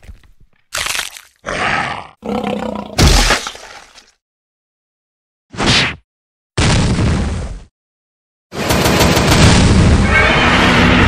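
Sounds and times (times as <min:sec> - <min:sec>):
beast-like growl: 0:01.4 - 0:03.0.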